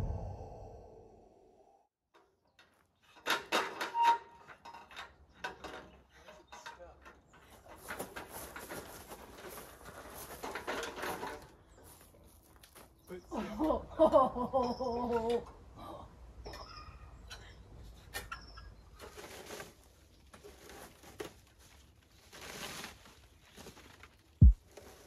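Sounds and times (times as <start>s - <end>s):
metal ladder clanking and rattling: 2.6s - 11.6s.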